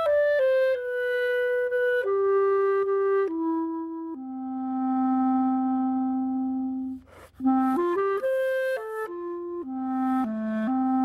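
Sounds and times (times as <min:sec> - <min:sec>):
solo clarinet notes: 0:00.0 - 0:11.0.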